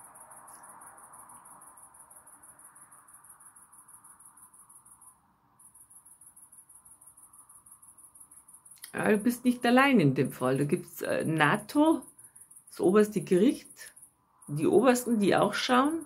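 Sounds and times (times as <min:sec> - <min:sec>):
insects trilling: 0:00.0 - 0:16.0
low room hiss: 0:00.0 - 0:16.0.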